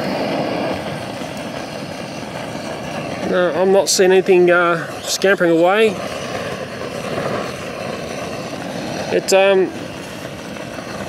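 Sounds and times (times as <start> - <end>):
gas torch flame rushing: 0.0 - 11.0.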